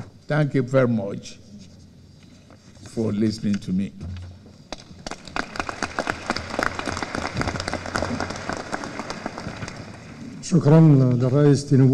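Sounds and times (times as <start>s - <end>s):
audience applauding: 4.7s - 10.9s.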